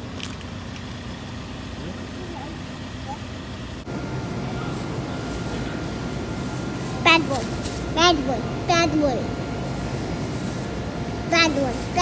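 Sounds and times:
low outdoor rumble: 0.0s - 12.0s
faint high hum: 1.1s - 12.0s.

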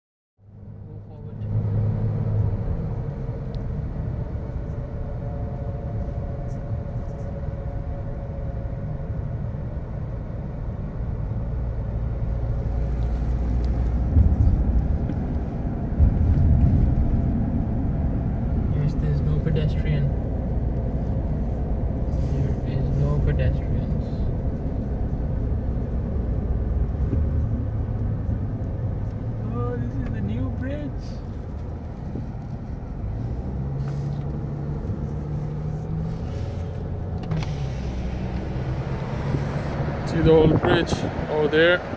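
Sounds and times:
car cabin road rumble: 0.4s - 41.9s.

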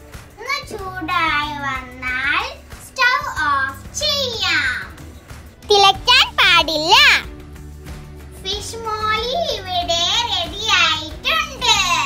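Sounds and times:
child speaking: 5.7s - 7.3s.

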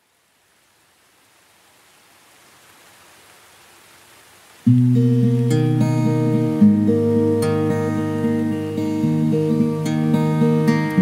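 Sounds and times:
faint even hiss: 0.0s - 11.0s.

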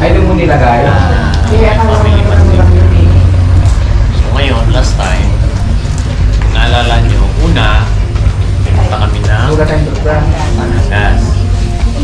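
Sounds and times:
loud low rumble: 0.0s - 12.0s
people talking: 0.0s - 12.0s.

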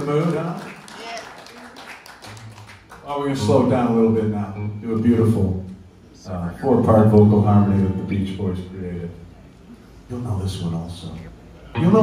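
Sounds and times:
man speaking over loudspeakers: 3.1s - 5.7s, 6.3s - 9.2s, 10.1s - 12.0s.

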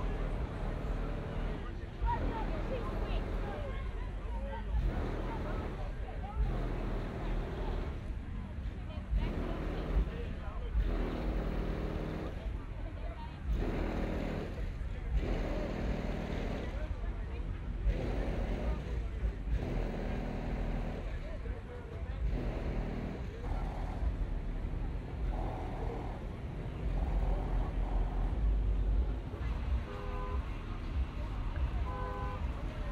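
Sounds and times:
car engine rumbling: 0.0s - 32.9s
people talking: 0.0s - 32.9s.

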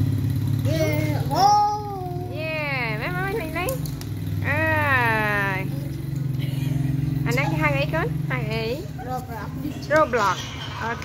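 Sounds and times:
child calling out: 0.6s - 2.4s.

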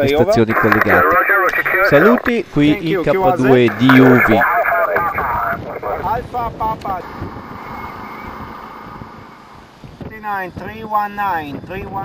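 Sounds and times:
garbled radio voice: 0.2s - 2.4s, 3.1s - 8.4s
radio static hiss: 0.2s - 9.8s.

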